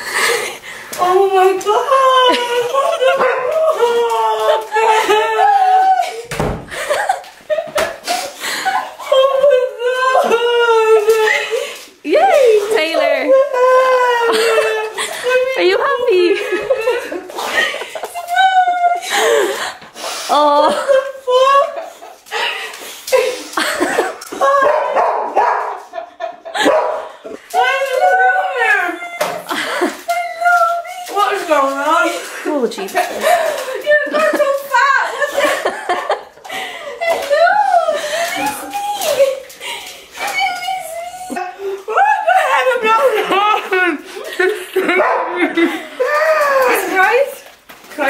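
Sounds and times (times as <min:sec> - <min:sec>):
women squealing and crying: 0:01.0 - 0:06.3, 0:08.2 - 0:19.6, 0:20.2 - 0:23.6, 0:27.4 - 0:35.4, 0:36.8 - 0:44.2, 0:45.8 - 0:47.4
dog barking excitedly: 0:24.6 - 0:26.0, 0:26.6 - 0:27.1, 0:44.9 - 0:45.4.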